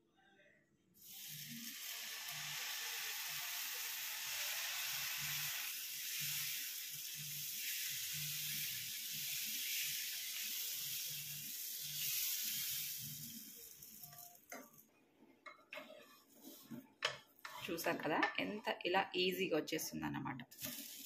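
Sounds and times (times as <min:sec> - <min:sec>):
batter sizzling on hot griddle: 0:01.0 - 0:14.6, 0:20.5 - 0:21.0.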